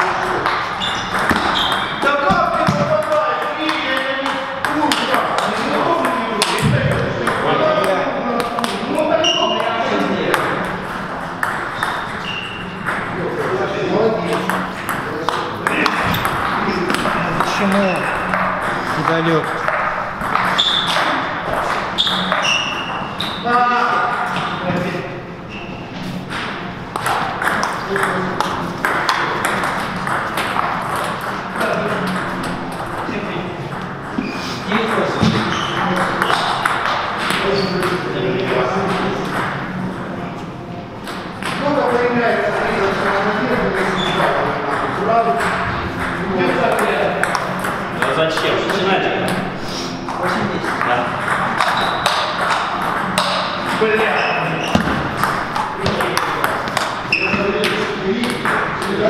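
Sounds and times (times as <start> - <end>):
ping pong ball on paddles: 0.0 - 24.6, 26.3 - 40.1, 41.0 - 42.2, 43.0 - 59.0
ping pong ball bouncing on table: 0.1 - 10.8, 11.4 - 13.2, 14.3 - 23.0, 26.9 - 33.0, 34.8 - 38.5, 44.2 - 49.5, 50.1 - 54.0, 54.6 - 59.0.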